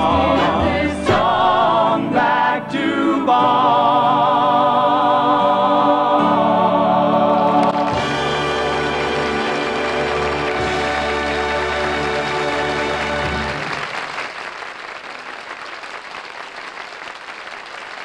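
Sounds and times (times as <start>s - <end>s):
orchestra and singers chord: 0.0s - 13.8s
audience applause: 7.5s - 18.0s.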